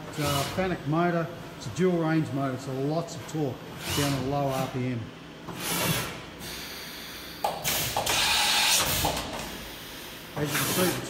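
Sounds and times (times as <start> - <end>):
machine whir: 3.8 - 4.8, 5.5 - 11.0.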